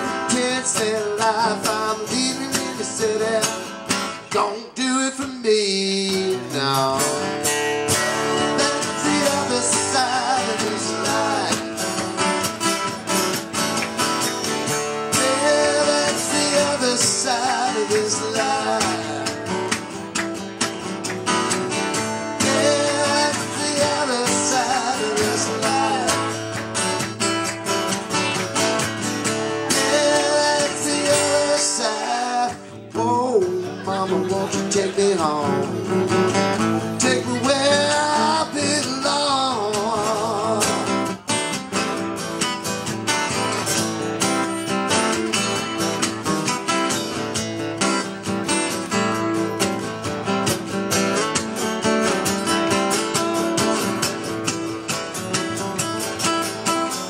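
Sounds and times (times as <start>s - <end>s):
person singing lead vocal: 0.0s - 7.4s, 8.4s - 12.0s, 14.9s - 19.7s, 22.2s - 26.6s, 29.4s - 41.2s
acoustic guitars strumming: 0.0s - 57.0s.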